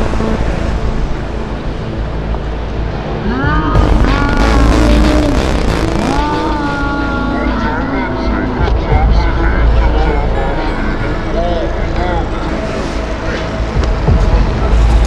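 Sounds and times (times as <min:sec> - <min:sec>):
steady deep rumble: 0:00.0 - 0:15.0
loud voices: 0:03.1 - 0:15.0.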